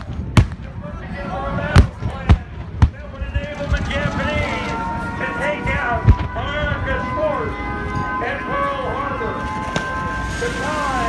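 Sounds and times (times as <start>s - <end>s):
low rumble: 0.0s - 8.4s
people talking: 0.0s - 11.0s.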